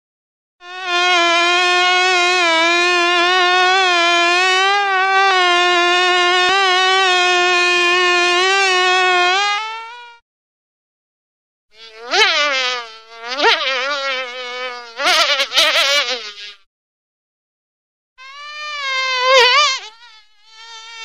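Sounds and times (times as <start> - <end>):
fly buzzing: 0.6 - 10.2, 11.7 - 16.7, 18.2 - 21.0.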